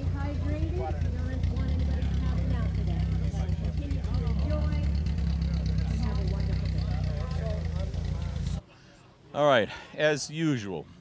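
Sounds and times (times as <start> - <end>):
engine idling: 0.0 - 8.6
people talking: 0.0 - 10.9.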